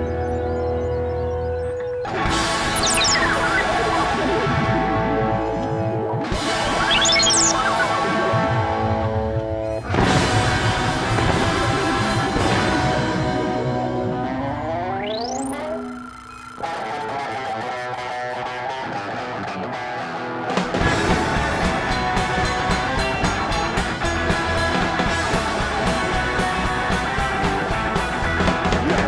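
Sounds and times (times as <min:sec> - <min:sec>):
rock band with electric guitar: 0:00.0 - 0:29.0
upward sweeping tone: 0:06.8 - 0:07.9, 0:14.0 - 0:18.5.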